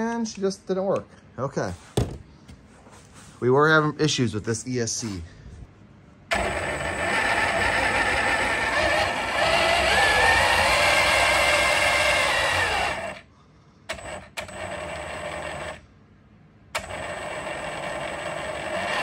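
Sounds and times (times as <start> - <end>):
electric motor whining: 6.3 - 13.2
tires spinning steel rollers: 6.3 - 13.2, 16.8 - 19.0.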